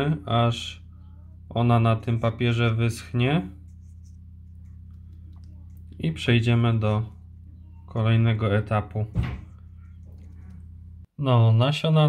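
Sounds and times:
steady low hum: 0.0s - 11.2s.

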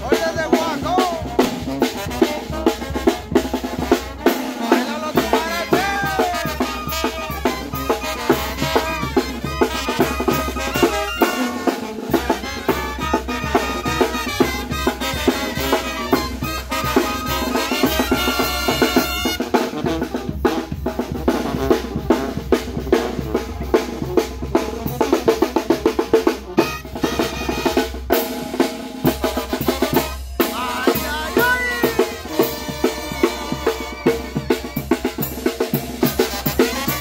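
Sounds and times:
brass band playing march: 0.0s - 37.0s
snare and bass drum roll: 0.0s - 37.0s.

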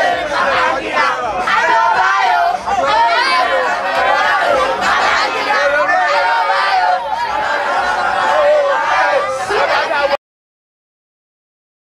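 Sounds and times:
boys shouting and yelling: 0.0s - 10.2s.

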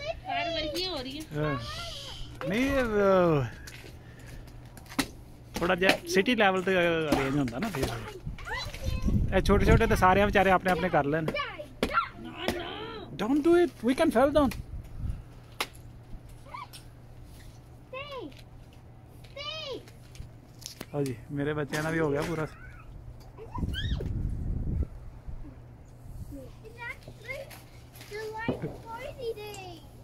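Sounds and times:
low steady background hum: 0.0s - 30.0s.

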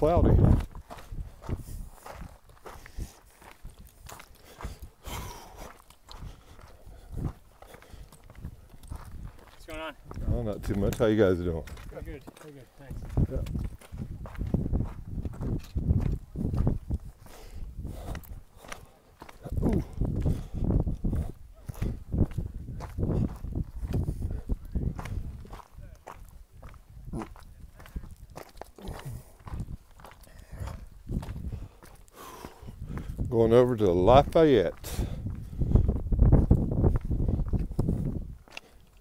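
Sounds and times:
wind rumbling on microphone: 0.0s - 12.2s, 12.8s - 39.0s
footsteps on rocky trail: 0.0s - 39.0s.

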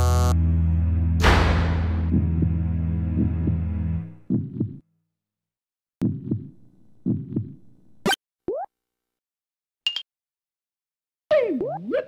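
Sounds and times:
short sharp noise: 1.2s - 2.1s
heartbeat thumps: 1.6s - 4.8s, 6.0s - 7.6s.

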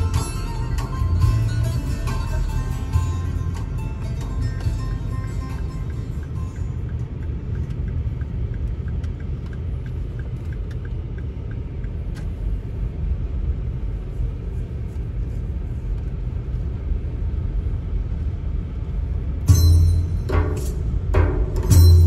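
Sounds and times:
car engine and road rumble: 0.0s - 22.0s
faint regular ticking: 5.4s - 12.0s.

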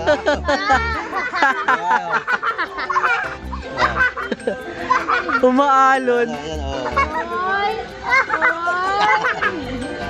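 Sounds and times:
baby laughing: 0.0s - 5.4s, 8.0s - 9.6s
people laughing: 0.0s - 7.2s, 8.0s - 10.0s
background music: 0.0s - 10.0s.

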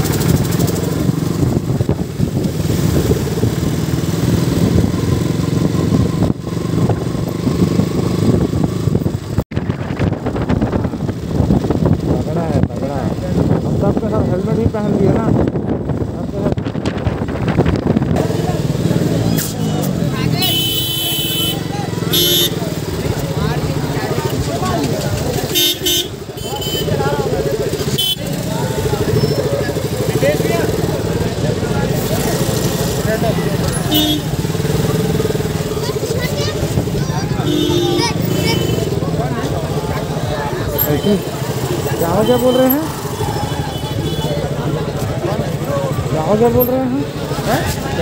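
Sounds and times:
crowd chatter: 0.0s - 48.0s
motorcycle engine running: 0.0s - 48.0s
vehicle horns honking: 19.4s - 22.8s, 25.4s - 29.5s, 33.7s - 34.5s, 37.3s - 39.0s, 40.8s - 44.8s.

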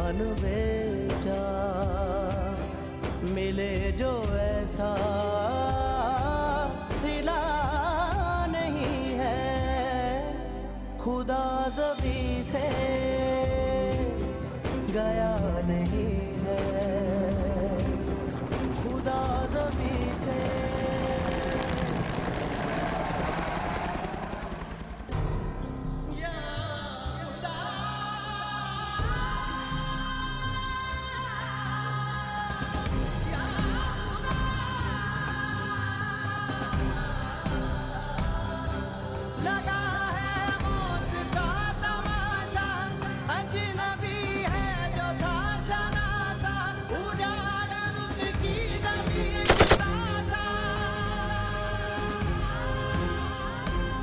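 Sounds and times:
song accompaniment: 0.0s - 54.0s
rapid gunfire: 19.2s - 25.1s, 49.4s - 49.9s
helicopter flying overhead: 19.9s - 25.2s.

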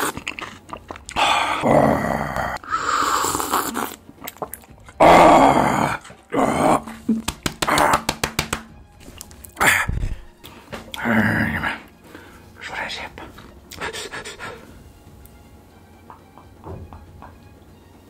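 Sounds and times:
breathy exhales: 2.6s - 3.5s
man slurping from a cup: 2.6s - 4.7s.

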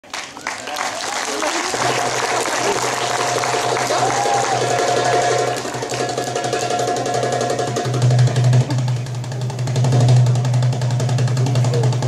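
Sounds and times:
steady low drone: 1.6s - 12.0s
goblet drum fast strokes: 3.1s - 12.0s.

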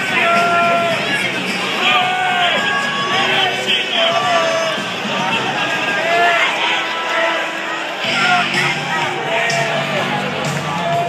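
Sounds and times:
crowd shouting: 0.0s - 11.0s
music over sound system: 0.0s - 11.0s.

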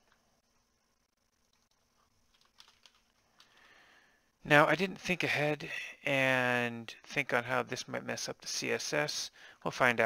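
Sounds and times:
faint keyboard keystrokes: 1.4s - 3.7s.

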